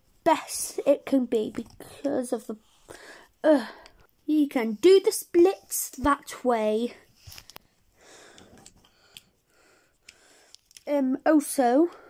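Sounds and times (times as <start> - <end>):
faint breaths: 2.6 - 4.1, 7.0 - 10.8.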